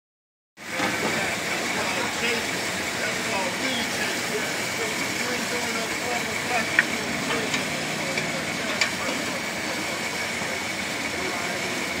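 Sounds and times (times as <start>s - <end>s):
car engine idling: 0.6s - 12.0s.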